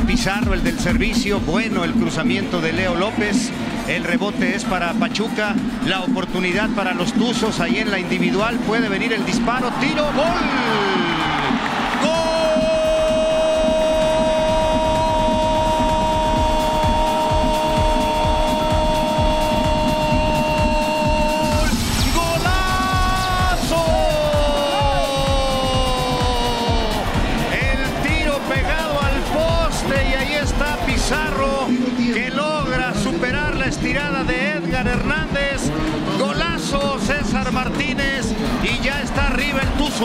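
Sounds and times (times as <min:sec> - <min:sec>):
stadium crowd noise: 0:00.0 - 0:40.0
excited shouted commentary: 0:04.7 - 0:40.0
commentator's drawn-out goal cry: 0:09.6 - 0:31.6.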